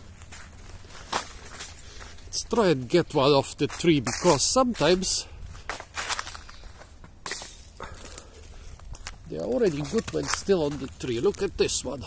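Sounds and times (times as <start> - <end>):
leaves rustling: 0.0 - 12.0
stick knocking in branches: 8.9 - 11.5.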